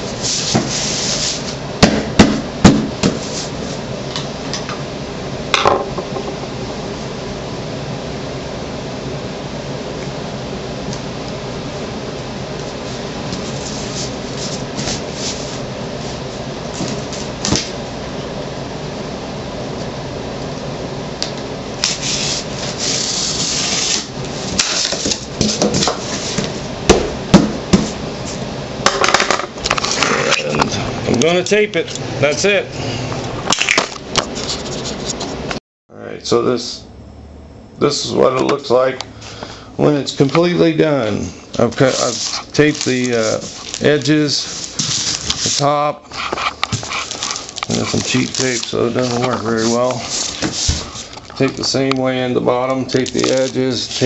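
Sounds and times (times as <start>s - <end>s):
knocks and thumps on cardboard: 1.8s - 3.2s, 26.9s - 27.9s.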